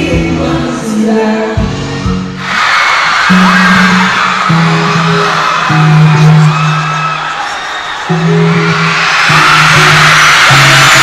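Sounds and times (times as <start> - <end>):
pop music over sound system: 0.0 - 2.5, 8.4 - 11.0
crowd screaming and cheering: 2.0 - 11.0.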